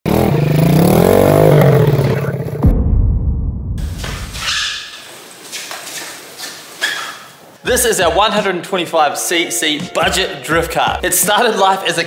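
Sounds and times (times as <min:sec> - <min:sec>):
kart engine revving: 0:00.1 - 0:02.6.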